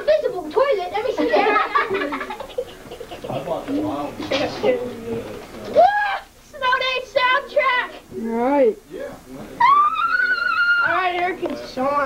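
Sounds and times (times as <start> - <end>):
children chattering: 0.0 - 8.6
children saying ooh: 9.6 - 11.0.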